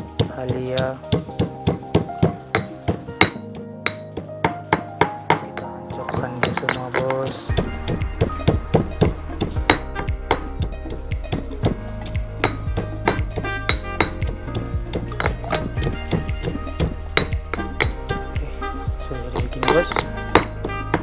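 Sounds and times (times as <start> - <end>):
stone pestle pounding in mortar: 0.0 - 4.3, 5.0 - 11.8, 12.4 - 18.6
background music: 0.0 - 21.0.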